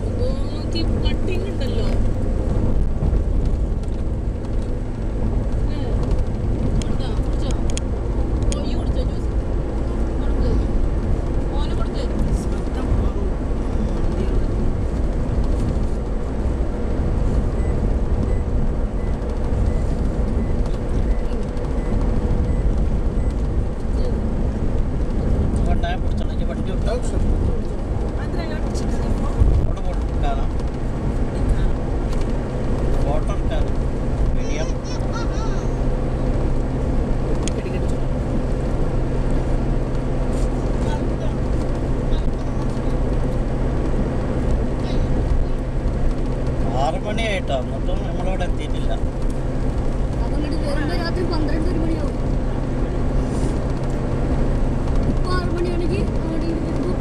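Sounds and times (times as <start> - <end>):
road and engine rumble: 0.0 - 57.0.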